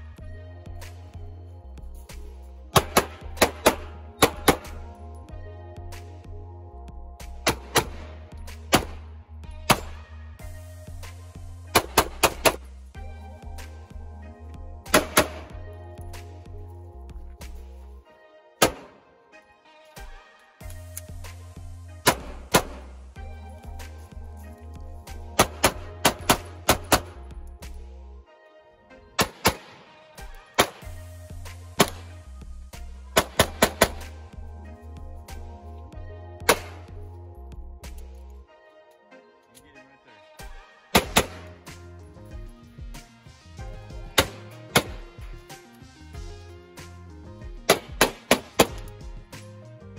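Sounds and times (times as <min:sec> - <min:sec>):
background music: 0:00.0 - 0:49.9
pistol shots: 0:02.7 - 0:05.0, 0:07.4 - 0:09.1, 0:09.7 - 0:10.1, 0:11.7 - 0:12.7, 0:14.9 - 0:15.6, 0:18.6 - 0:19.0, 0:22.0 - 0:22.9, 0:25.2 - 0:27.2, 0:29.2 - 0:31.0, 0:31.8 - 0:32.1, 0:33.2 - 0:34.2, 0:36.5 - 0:36.9, 0:40.9 - 0:41.7, 0:44.1 - 0:45.2, 0:47.6 - 0:48.9.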